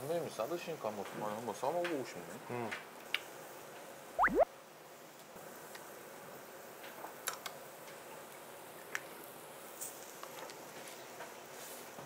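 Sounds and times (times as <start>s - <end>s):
rising whistle glides: 4.2s - 4.4s.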